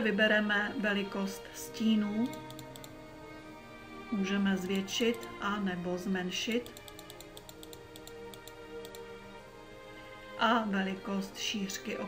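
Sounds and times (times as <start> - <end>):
soft background music: 0.0 - 12.0
faint mouse clicks: 2.2 - 3.0, 6.5 - 9.1.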